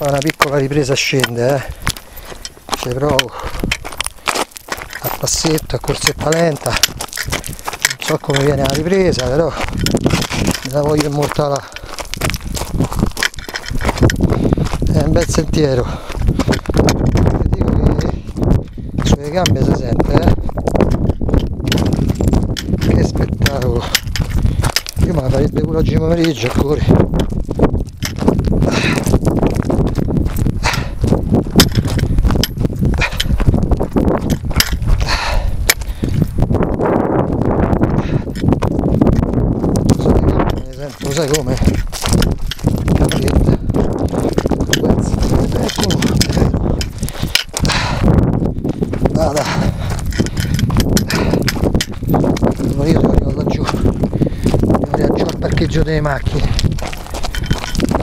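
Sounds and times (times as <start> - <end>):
footsteps crunching on gravel: 0.0 - 58.0
steady low rumble: 0.0 - 58.0.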